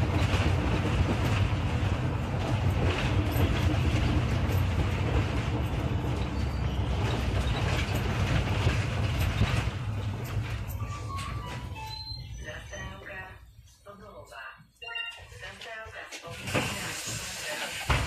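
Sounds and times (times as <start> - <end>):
bus engine and road rumble: 0.0 - 13.4
person speaking announcement: 12.3 - 17.6.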